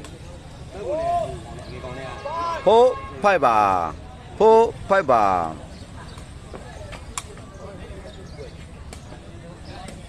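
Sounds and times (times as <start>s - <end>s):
murmur of outdoor crowd: 0.0s - 10.0s.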